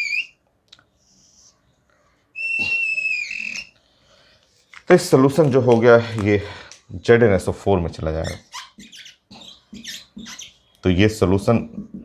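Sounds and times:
marker squeaking on whiteboard: 0.0s - 0.4s, 2.3s - 3.8s, 8.0s - 10.8s.

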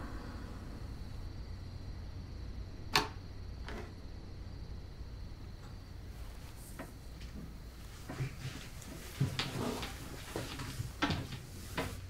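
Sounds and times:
faint steady low hum: 0.0s - 12.0s.

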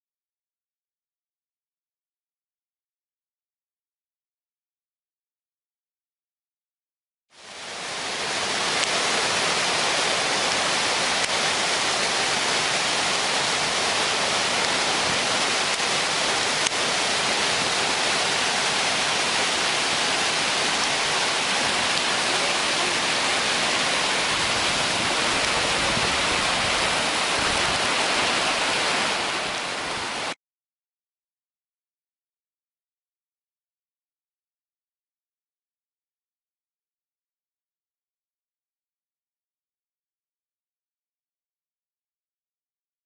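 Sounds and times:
whitewater rapids rushing: 7.4s - 30.4s.

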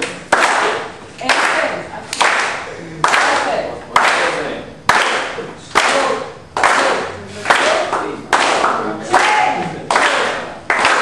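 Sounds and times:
group clapping hands in time: 0.0s - 11.0s.

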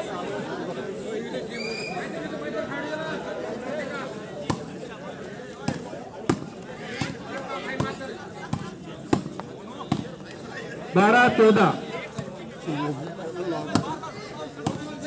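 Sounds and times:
spectators chatting: 0.0s - 15.0s.

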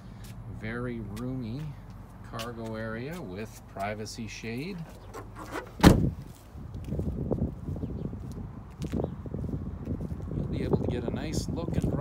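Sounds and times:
footsteps scuffing: 0.1s - 10.4s
handling noise: 4.8s - 6.4s
liftgate thud: 5.2s - 6.2s.

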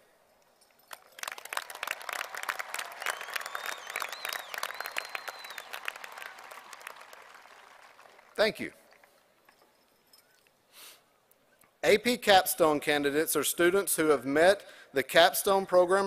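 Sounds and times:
crowd applause: 0.9s - 9.2s
long wavering whistle: 3.0s - 6.4s.

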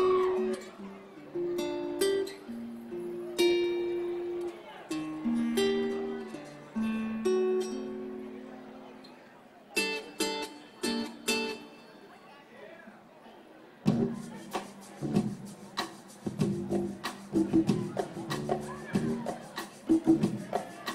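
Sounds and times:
acoustic guitar plucked notes: 0.0s - 12.2s, 13.9s - 20.9s.

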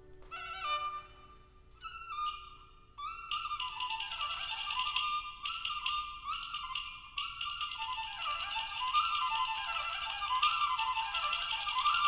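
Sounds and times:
bowed fiddle fast melody: 0.3s - 12.0s.

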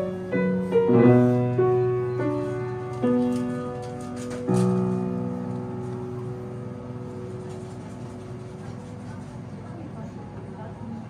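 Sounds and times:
piano chord ringing: 0.0s - 8.7s.

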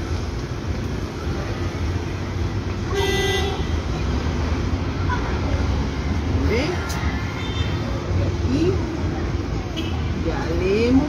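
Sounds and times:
road traffic rumble: 0.0s - 11.0s
vehicle horn toot: 2.9s - 3.6s.

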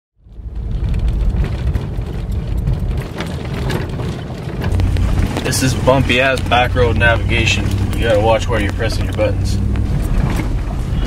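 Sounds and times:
engine and tyres rumbling: 0.2s - 11.0s
knocks and rattles from bumps: 0.6s - 11.0s.

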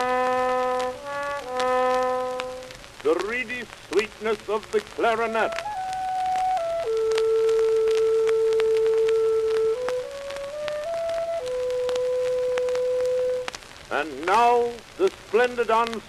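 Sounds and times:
solo clarinet: 0.0s - 2.7s, 5.1s - 13.5s
record surface crackle: 0.0s - 16.0s.

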